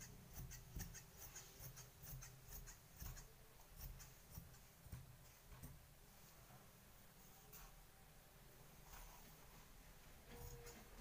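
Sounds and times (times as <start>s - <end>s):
scissors cutting cloth: 0.0s - 4.6s.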